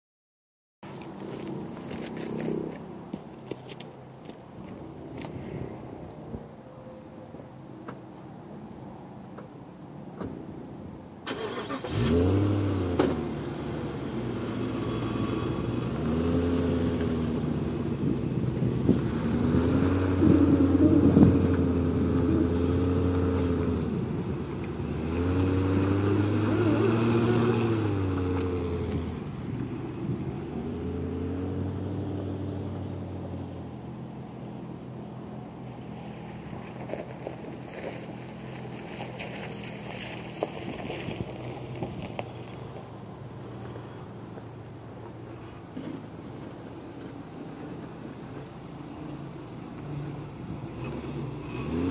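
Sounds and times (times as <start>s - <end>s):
car engine revving under load: 11.3s - 34.3s, 40.3s - 51.9s.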